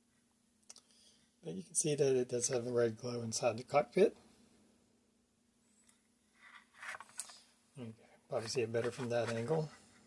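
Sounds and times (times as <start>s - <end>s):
faint steady hum: 0.0s - 10.0s
plastic model scraping on base: 6.4s - 7.4s, 8.4s - 9.7s.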